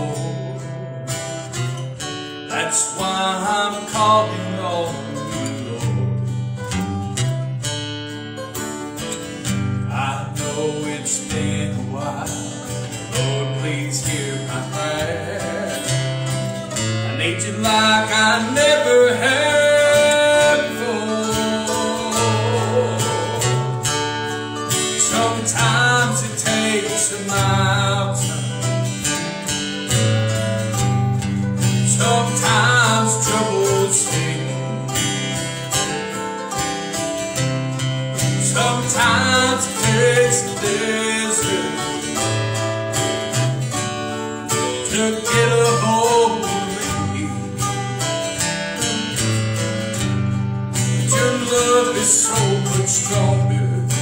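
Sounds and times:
man singing: 0:00.0 - 0:01.4, 0:02.4 - 0:06.3, 0:09.8 - 0:29.3, 0:31.6 - 0:36.2, 0:38.2 - 0:42.7, 0:44.5 - 0:48.1, 0:50.8 - 0:54.0
strummed acoustic guitars: 0:00.0 - 0:54.0.

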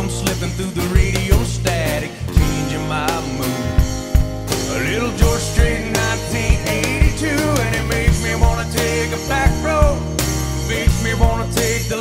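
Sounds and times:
person singing: 0:00.0 - 0:03.8, 0:04.5 - 0:12.0
live country band music: 0:00.0 - 0:12.0
drum beat: 0:01.0 - 0:02.8, 0:03.4 - 0:11.7.

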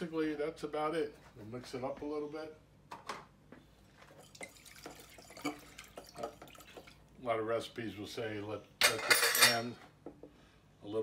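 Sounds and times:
liquid splashing in plastic tub: 0:04.1 - 0:07.1.

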